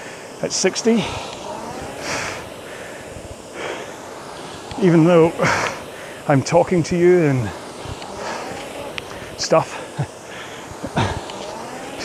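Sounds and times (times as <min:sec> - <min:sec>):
faint rush of air: 0:00.0 - 0:12.0
person breathing out: 0:05.4 - 0:06.3.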